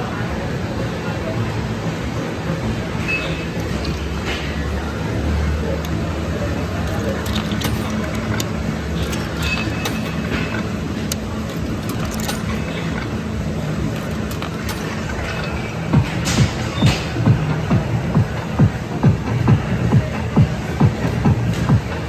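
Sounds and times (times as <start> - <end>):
arcade background noise: 0.0 - 22.0
coins clinking into coin slot: 3.2 - 4.6, 5.8 - 15.8.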